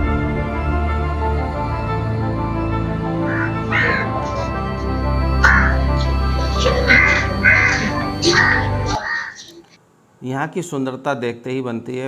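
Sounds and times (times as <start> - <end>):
background music: 0.0 - 9.8
crows cawing: 3.0 - 9.8.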